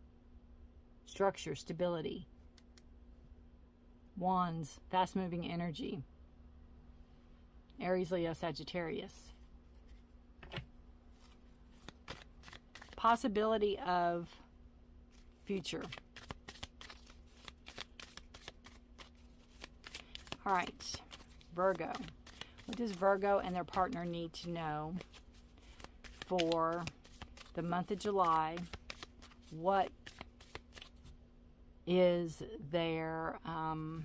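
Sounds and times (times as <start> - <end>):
cards being shuffled: 9.8 - 13.1, 15.1 - 31.2.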